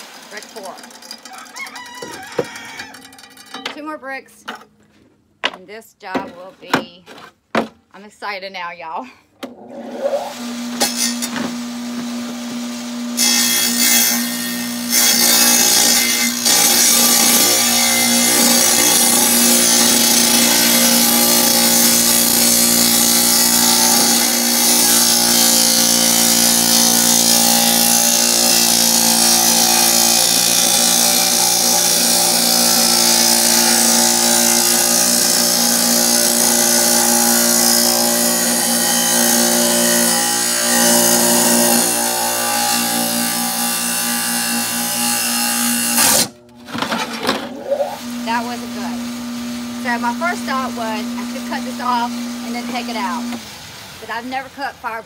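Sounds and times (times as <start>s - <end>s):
wet tile saw cutting brick: 9.6s - 53.5s.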